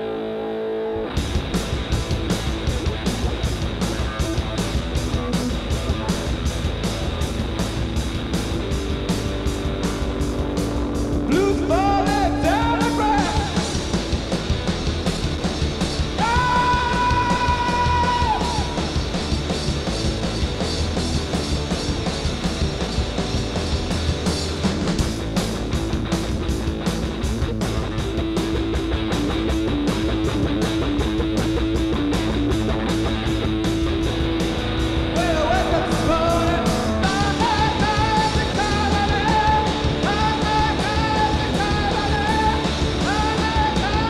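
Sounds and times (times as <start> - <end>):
live rock band playing: 0.0 - 44.0.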